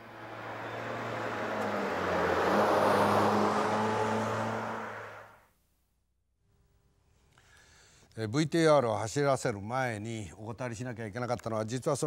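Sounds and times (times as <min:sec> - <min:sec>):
car driving past: 0:00.0 - 0:05.4.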